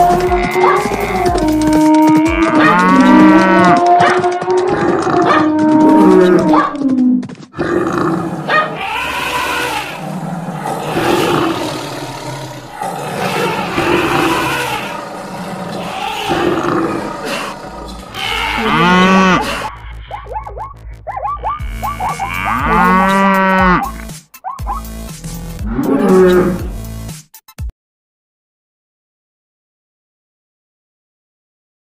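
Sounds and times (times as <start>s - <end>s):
cattle mooing: 0.0s - 6.9s, 7.6s - 20.6s, 21.4s - 24.0s, 25.6s - 26.7s
jumble of animal calls: 0.0s - 7.0s, 7.6s - 24.9s.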